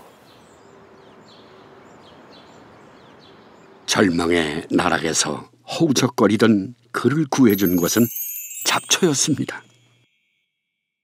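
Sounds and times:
outdoor background noise: 0.0s - 7.6s.

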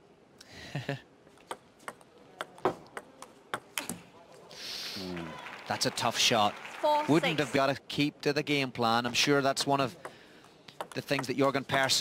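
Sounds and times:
table tennis ball clicking: 10.7s - 11.3s.

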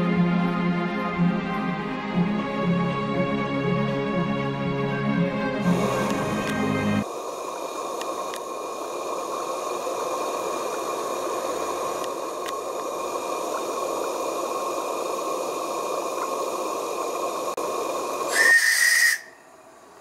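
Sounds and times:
steam locomotive hissing: 5.6s - 20.0s
steam whistle blast: 18.3s - 19.5s.

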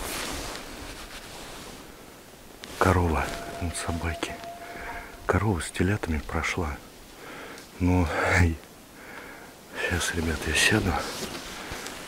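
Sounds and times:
handling and clothing rustle: 10.4s - 12.0s.

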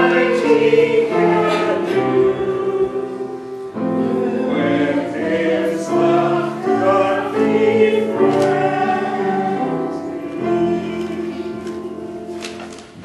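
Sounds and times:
group singing a hymn: 0.0s - 12.2s.

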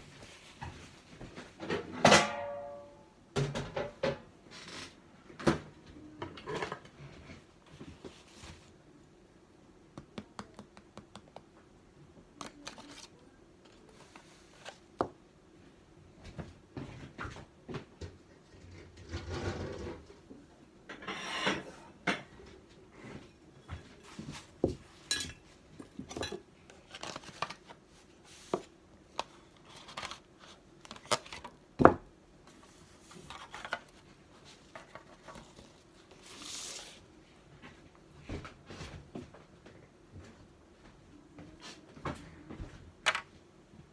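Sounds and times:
utensils and bowls clinking: 25.1s - 25.4s.

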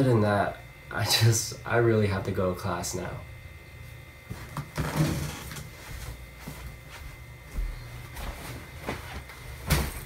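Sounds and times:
clothes and backpack rustling: 4.3s - 10.0s.

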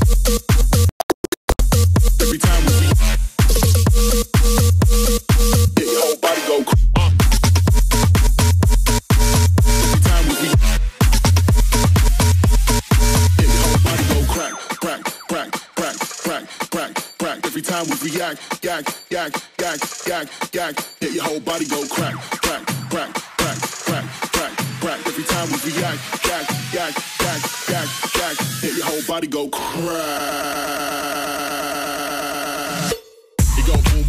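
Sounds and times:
fast vocal line over a beat: 1.8s - 34.0s.

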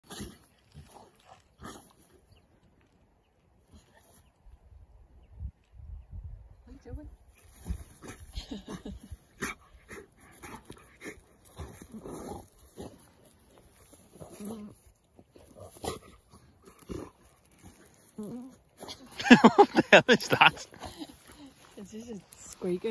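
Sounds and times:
dog rolling in grass: 7.4s - 22.9s.

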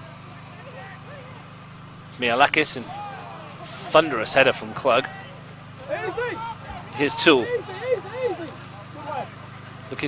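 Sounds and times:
distant footballers shouting: 0.0s - 10.0s
steady low hum: 0.0s - 10.0s.

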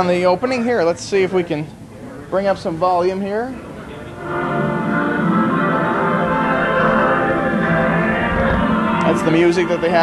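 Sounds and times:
opening music through tv speaker: 3.6s - 10.0s.

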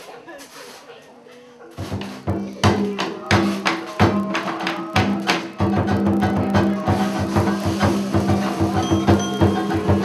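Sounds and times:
sharp percussion strikes: 1.8s - 10.0s.

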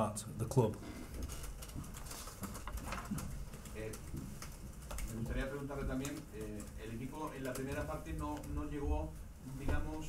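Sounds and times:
man speaking: 5.1s - 10.0s.

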